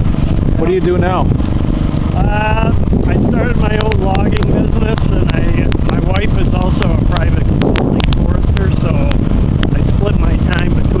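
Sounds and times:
loud steady low rumble: 0.0 - 11.0
sharp crackles: 0.0 - 11.0
man talking: 0.5 - 1.3, 2.1 - 11.0.

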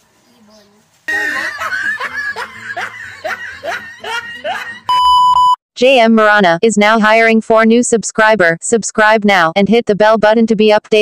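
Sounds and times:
person laughing: 1.1 - 5.0
electronic beep: 4.9 - 5.6.

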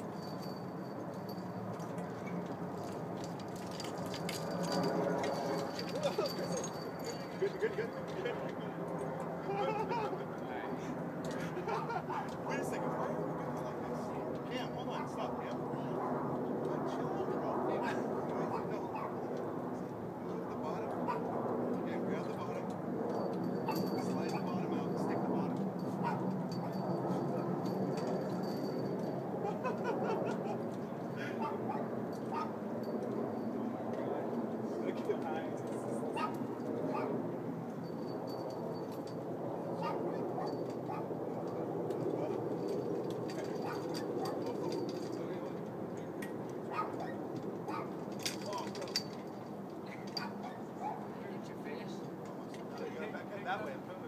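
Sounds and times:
indistinct talk: 5.8 - 22.8.

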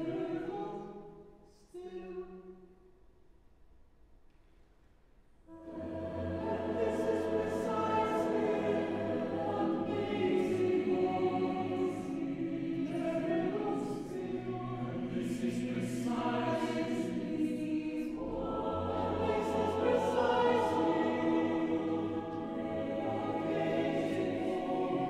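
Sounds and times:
choir singing chords: 0.0 - 2.9, 5.5 - 25.0.

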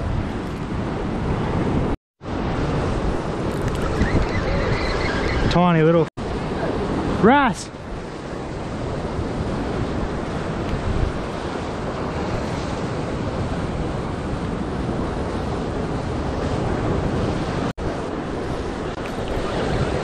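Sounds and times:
wind buffeting microphone: 0.0 - 7.2, 7.8 - 20.0.

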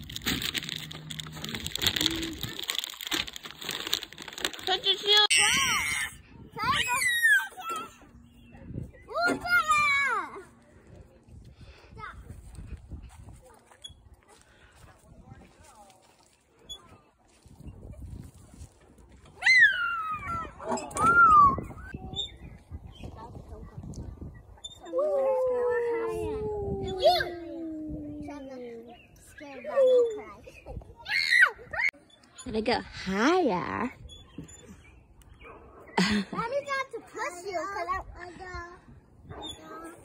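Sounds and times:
young child squealing: 19.4 - 21.8, 31.0 - 31.9
young child laughing: 36.0 - 36.5.

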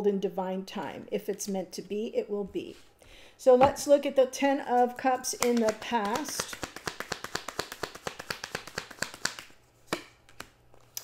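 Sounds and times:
cards being shuffled: 5.2 - 11.0
cards tapping: 5.2 - 11.0.

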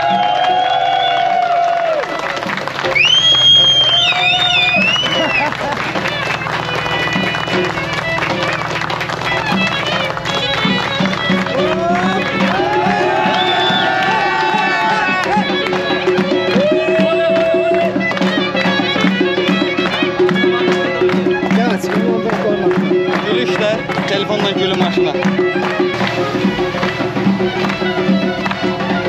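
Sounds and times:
crowd clapping: 0.0 - 29.0
crowd talking: 0.0 - 29.0
reedy wind instrument melody: 0.0 - 29.0
steady drum beat: 2.4 - 29.0
drone: 24.8 - 29.0.

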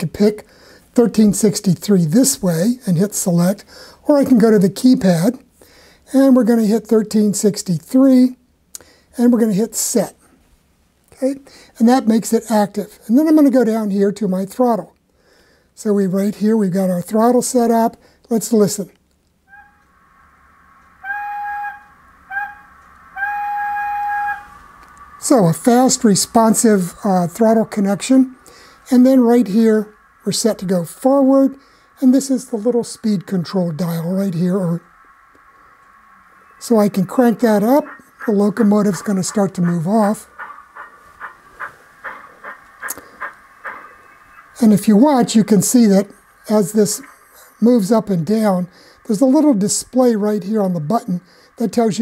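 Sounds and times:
faint steady background sound: 0.0 - 52.0
model locomotive steam whistle: 19.5 - 26.9.

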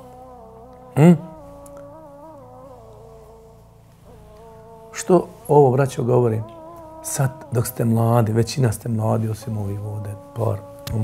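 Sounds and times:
person humming a soft melody: 0.0 - 11.0.

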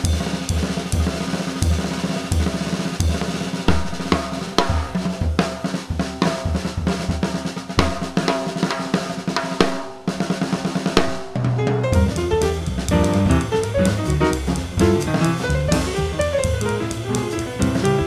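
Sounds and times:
jazz drum solo: 0.0 - 18.0
piano: 0.0 - 18.0
upright bass: 11.4 - 18.0.

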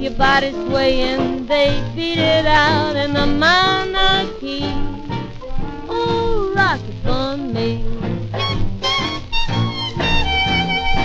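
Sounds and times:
big band swing instrumental: 0.0 - 11.0.

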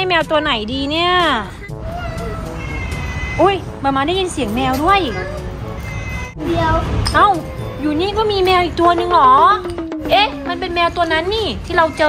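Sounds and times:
cat meowing: 1.8 - 3.6, 5.0 - 6.4.

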